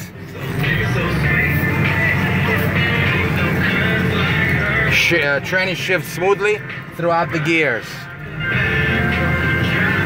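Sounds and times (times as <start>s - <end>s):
diesel truck engine droning: 0.0s - 10.0s
faint radio music: 0.0s - 10.0s.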